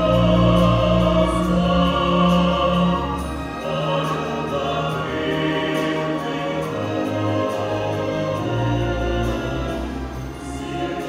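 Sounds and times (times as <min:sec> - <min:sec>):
orchestra playing: 0:00.0 - 0:11.0
voices singing: 0:00.0 - 0:11.0.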